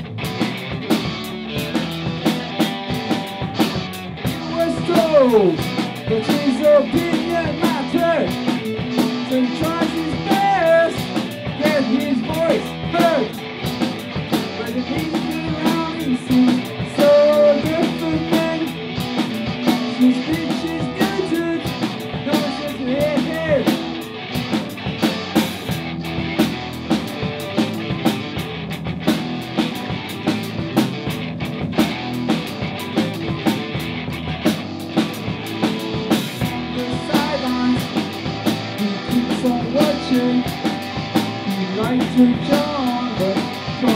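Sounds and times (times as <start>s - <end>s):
drum kit: 0.0s - 43.9s
electric bass: 0.0s - 43.9s
electric guitars: 0.0s - 43.9s.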